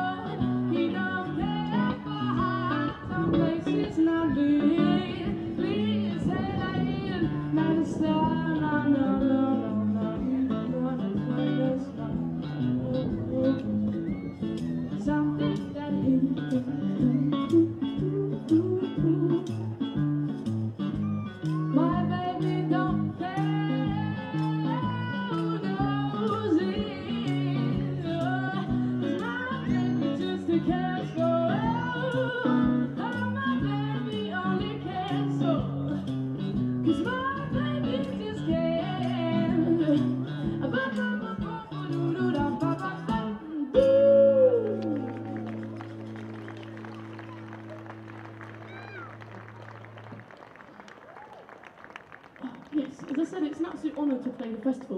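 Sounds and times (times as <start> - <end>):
woman singing blues: 0.0 - 20.2, 21.3 - 45.5
electric guitar: 0.0 - 52.9.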